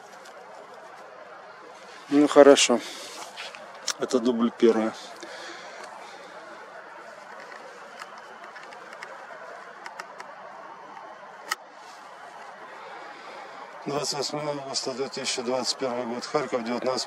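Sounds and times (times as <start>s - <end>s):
distant city noise: 0.0s - 17.0s
light clicks: 7.3s - 9.2s.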